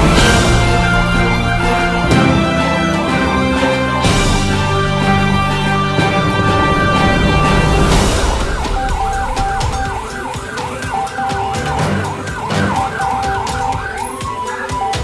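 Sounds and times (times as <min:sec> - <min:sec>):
background music: 0:00.0 - 0:15.0
emergency siren yelping: 0:00.0 - 0:15.0.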